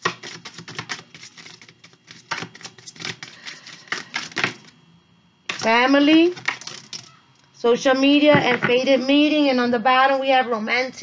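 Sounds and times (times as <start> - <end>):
cards being shuffled: 0.0 - 4.7.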